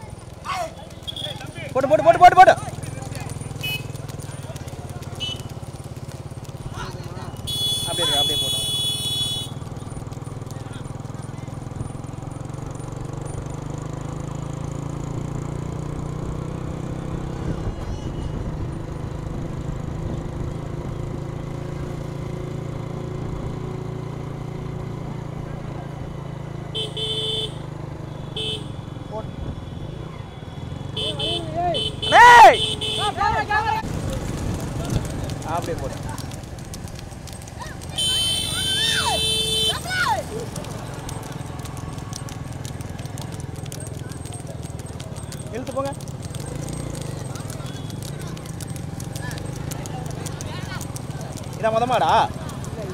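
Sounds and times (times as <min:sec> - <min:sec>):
horns tooting: 0:00.0 - 0:10.0, 0:26.6 - 0:33.8, 0:37.3 - 0:52.9
motorcycle engines humming: 0:00.0 - 0:52.9
loud shout: 0:31.0 - 0:33.8, 0:37.6 - 0:40.7.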